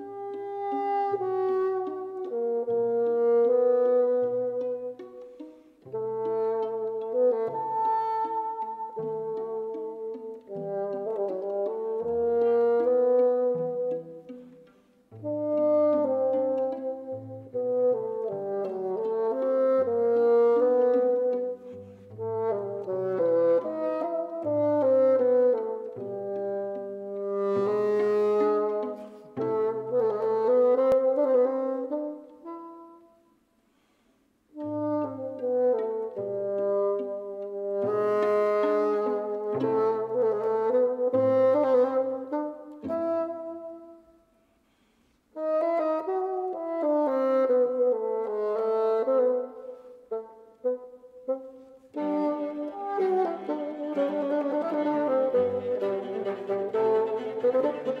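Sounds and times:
bassoon and string trio playing: 0:00.0 - 0:58.0.

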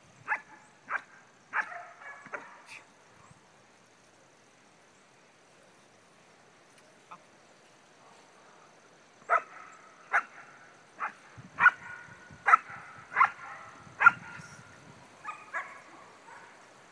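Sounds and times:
dog barking: 0:00.3 - 0:02.7, 0:09.3 - 0:14.5, 0:15.2 - 0:16.6.

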